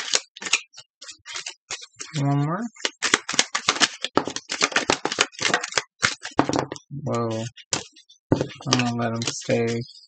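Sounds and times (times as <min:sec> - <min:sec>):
playing cards being shuffled: 0:00.0 - 0:02.2, 0:02.8 - 0:09.8.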